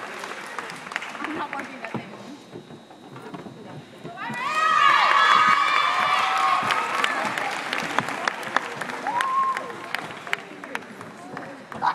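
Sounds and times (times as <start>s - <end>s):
audience applause: 0.0s - 1.9s, 4.7s - 11.9s.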